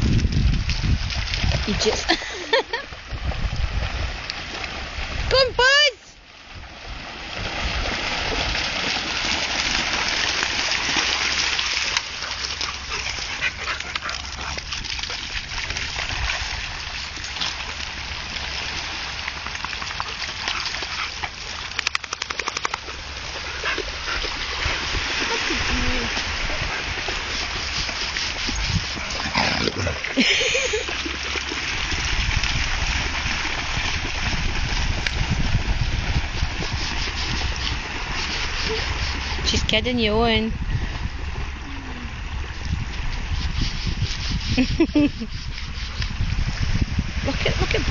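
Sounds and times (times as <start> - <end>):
wind rumbling on microphone: 0.0 - 22.1, 22.8 - 47.9.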